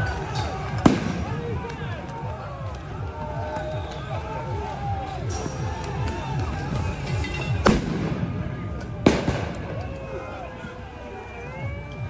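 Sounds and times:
crowd shouting: 0.0 - 12.0
explosive bangs with echo: 0.8 - 1.6, 7.6 - 9.8.

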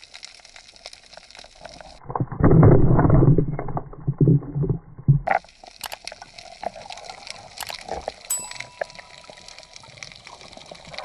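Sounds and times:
faint underwater water noise: 0.0 - 11.0.

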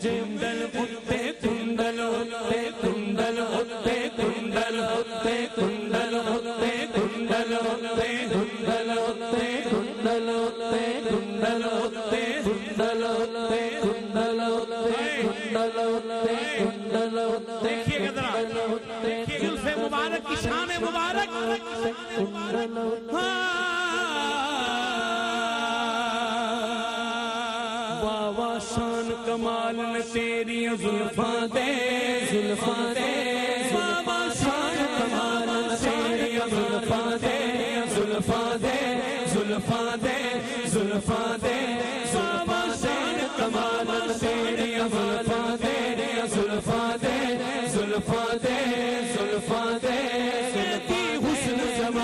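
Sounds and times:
man singing devotional verse: 0.0 - 52.0.

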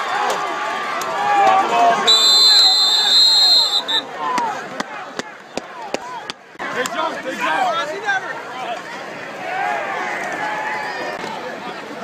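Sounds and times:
crowd shouting and cheering: 0.0 - 12.0
referee whistle blast: 2.0 - 4.1.

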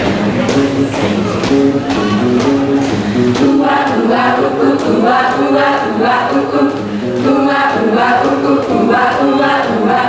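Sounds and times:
group of women singing: 3.2 - 10.0.

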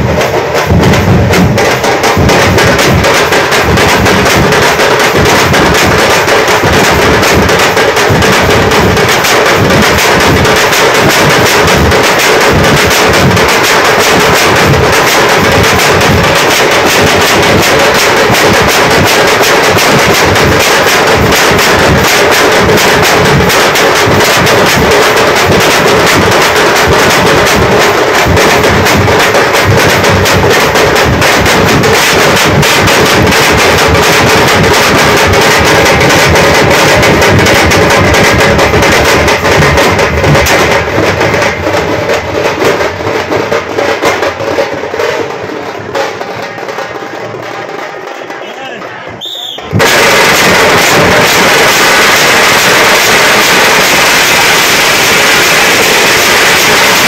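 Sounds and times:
frame drums beaten with sticks: 0.0 - 57.0.

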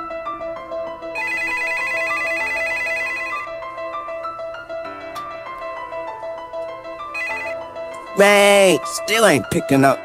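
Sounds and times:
telephone ringing trill: 1.2 - 3.5, 7.2 - 7.6.

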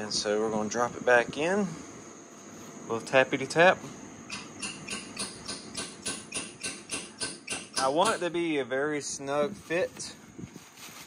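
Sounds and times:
hammer tapping on metal: 4.3 - 8.3.

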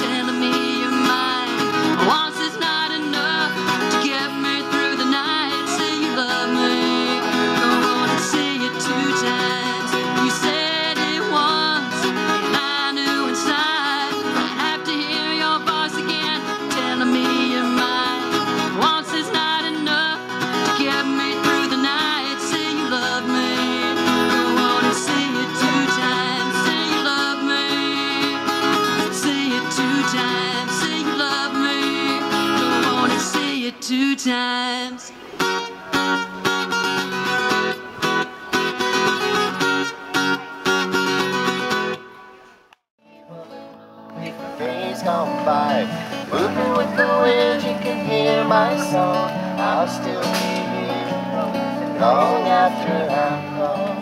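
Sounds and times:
woman singing: 0.0 - 35.2, 44.3 - 54.0
acoustic guitar: 0.0 - 54.0.

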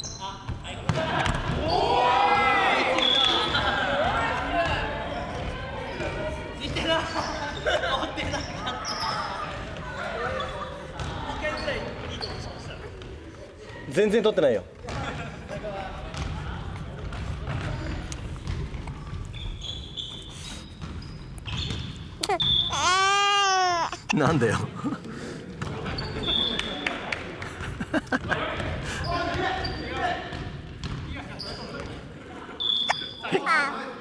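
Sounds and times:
voices in a gymnasium: 0.0 - 34.0.

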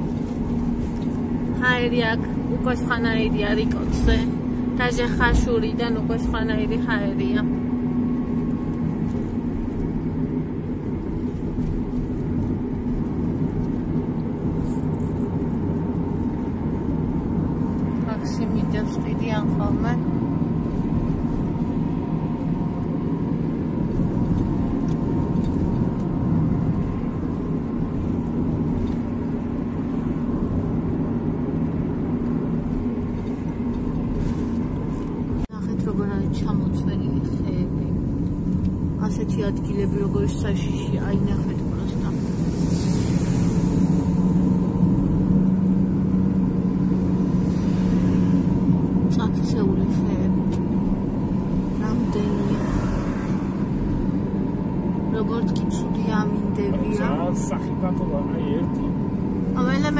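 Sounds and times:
car engine and tyre drone: 0.0 - 59.9.

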